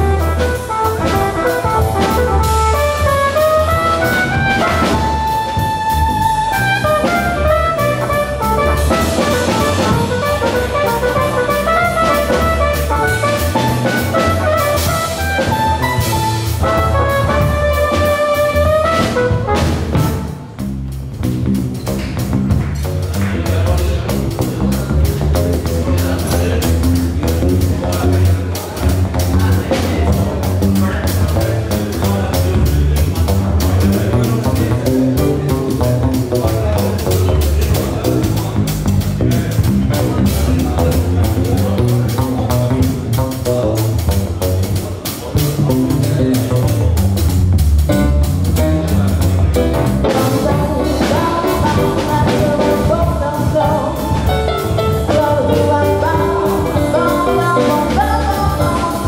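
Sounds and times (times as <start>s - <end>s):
keyboard chords: 0.0s - 21.7s, 44.3s - 59.0s
bass line: 0.0s - 59.0s
drum kit beat: 0.0s - 59.0s
jazz band playing: 0.0s - 59.0s.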